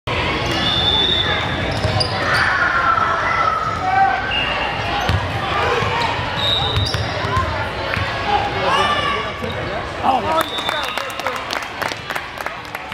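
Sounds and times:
sneakers squeaking: 0.4 - 2.7, 3.6 - 7.6.

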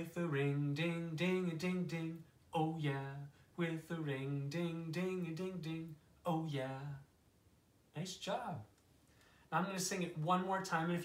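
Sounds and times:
man singing unaccompanied: 0.0 - 7.2, 9.5 - 11.0.

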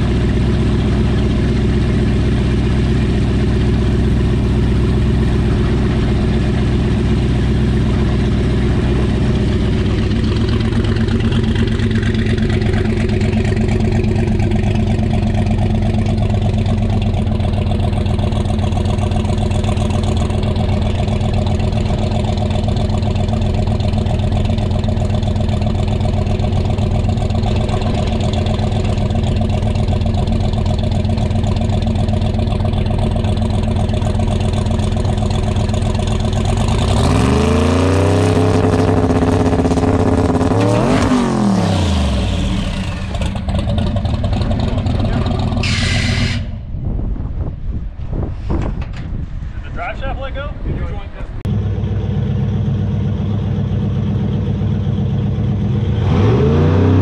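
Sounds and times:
truck engine idling and revving: 0.0 - 57.0.

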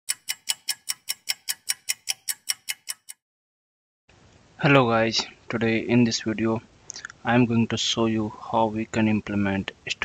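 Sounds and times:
rapid clock-like ticking: 0.1 - 3.2.

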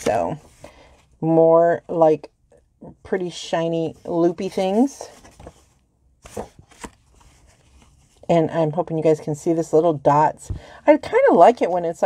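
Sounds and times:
paper rustling: 4.4 - 8.2.

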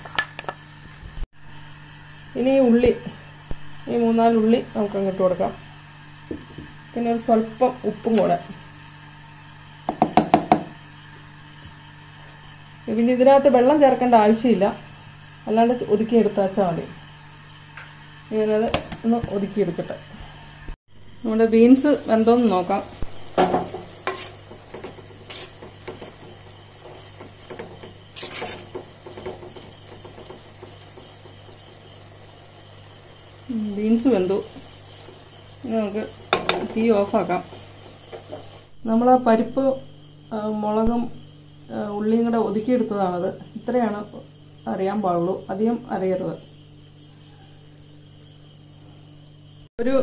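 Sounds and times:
wooden spatula scraping clay pot: 23.9 - 30.6.

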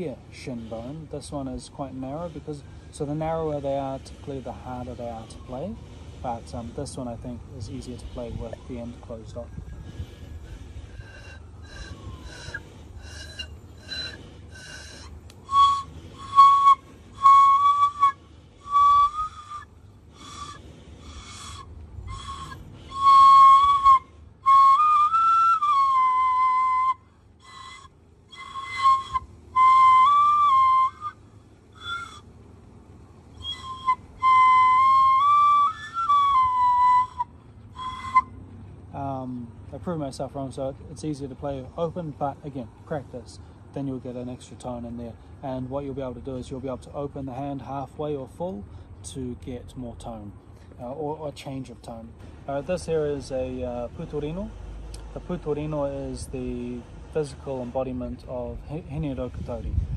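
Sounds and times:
bone flute notes: 0.6 - 32.4, 33.2 - 38.6.

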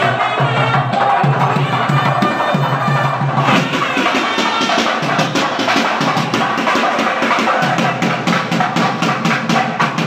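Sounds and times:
barrel drum beaten fast: 0.0 - 10.0
festival music: 0.0 - 10.0.

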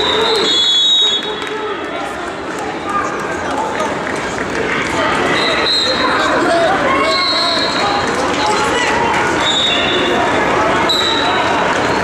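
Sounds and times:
murmur of chatter: 0.0 - 12.0.

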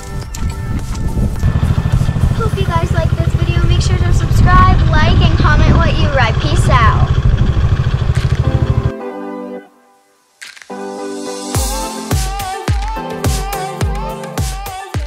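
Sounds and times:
quad engine running: 0.8 - 9.0
child's voice: 2.4 - 7.1.

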